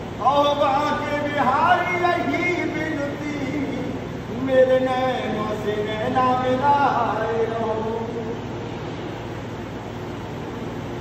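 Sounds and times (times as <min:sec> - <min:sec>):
man singing long held note: 0:00.2 - 0:08.5.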